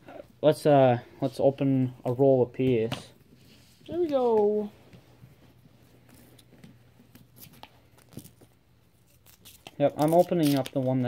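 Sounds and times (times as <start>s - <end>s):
paper rustling: 5.4s - 11.0s.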